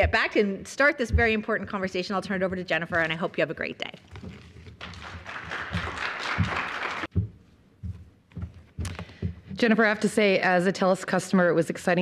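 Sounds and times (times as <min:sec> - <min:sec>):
soft low thumps: 0:01.0 - 0:03.2, 0:07.1 - 0:09.7
audience applauding: 0:04.8 - 0:07.1.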